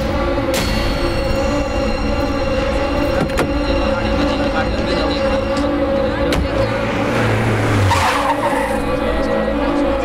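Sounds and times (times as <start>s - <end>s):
car engine humming: 0.0s - 10.0s
tyres squealing: 7.8s - 9.2s.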